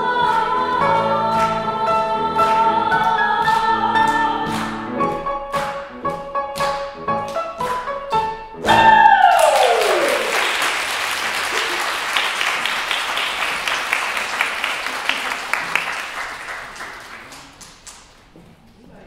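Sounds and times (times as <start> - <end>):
audience applause: 8.7 - 18.2.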